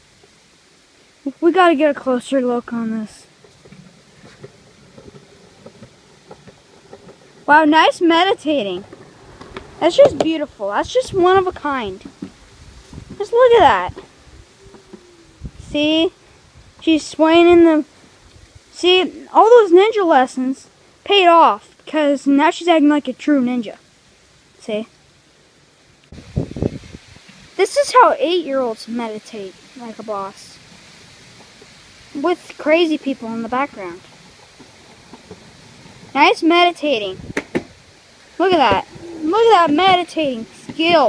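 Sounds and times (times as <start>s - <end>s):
skateboard wheels rolling on concrete: 0.0s - 41.0s
wind buffeting microphone: 7.5s - 18.7s, 26.1s - 27.3s, 36.0s - 41.0s.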